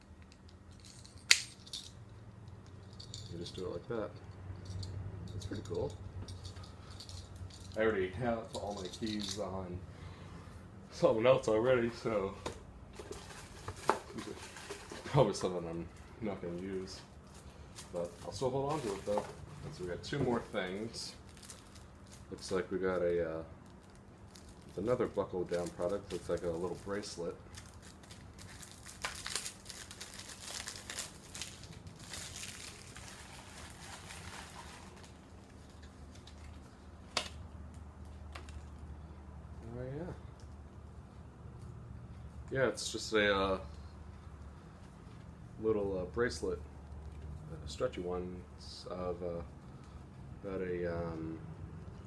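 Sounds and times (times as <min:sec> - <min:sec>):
plastic bag crinkling: 0:13.2 - 0:36.8
hand rummaging in cardboard box: 0:18.2 - 0:19.3.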